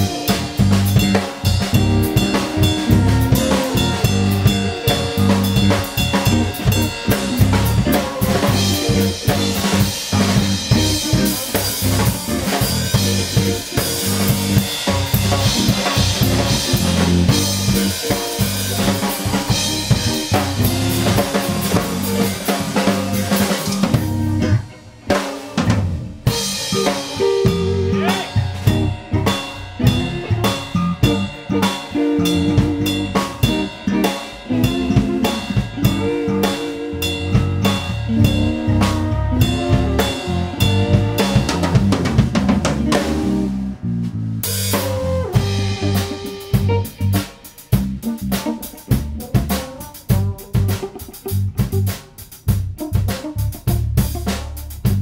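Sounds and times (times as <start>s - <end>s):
electric guitar: 0.0s - 43.8s, 44.4s - 52.2s
drum kit: 0.0s - 55.0s
electric bass: 0.0s - 55.0s
french horn: 38.1s - 41.8s.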